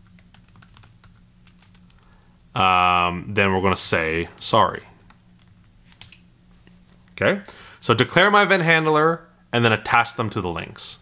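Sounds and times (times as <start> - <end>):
computer keyboard keystrokes: 0.0 - 2.1, 4.1 - 6.2
low steady hum: 0.0 - 11.0.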